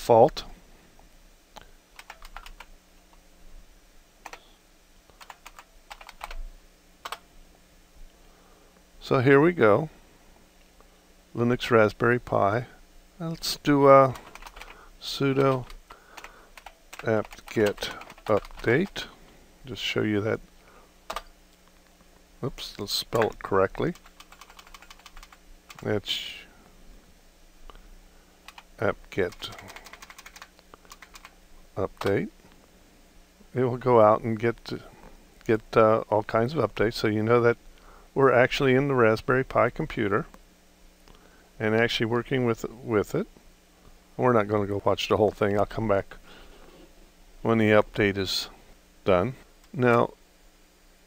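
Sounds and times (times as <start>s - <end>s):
keyboard typing: 2.0s - 2.7s, 5.2s - 6.4s, 7.0s - 7.2s, 14.1s - 14.8s, 15.4s - 19.0s, 21.1s - 21.3s, 23.9s - 25.9s, 28.5s - 31.3s.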